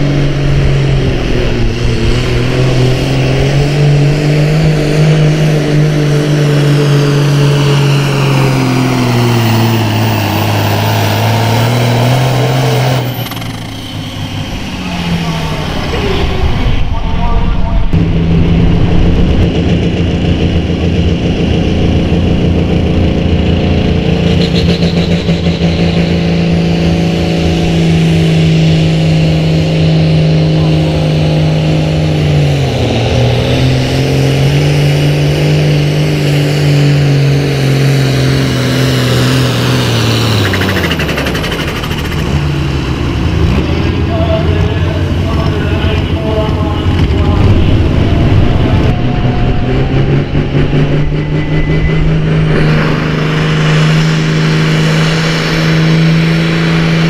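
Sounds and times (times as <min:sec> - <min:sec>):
tractor engine under full load: 0:00.0 - 0:57.0
tractor engine winding down: 0:00.0 - 0:57.0.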